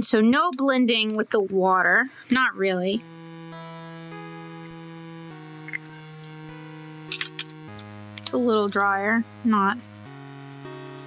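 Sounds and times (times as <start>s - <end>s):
soft synthesizer chords: 2.3s - 11.0s.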